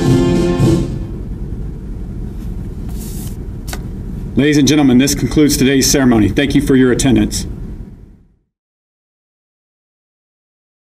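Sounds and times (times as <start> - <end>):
low room rumble: 0.0 - 8.5.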